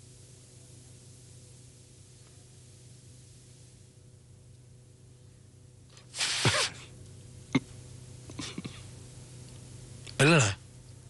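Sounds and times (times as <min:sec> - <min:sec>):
person sneezing: 0:06.2 - 0:06.9.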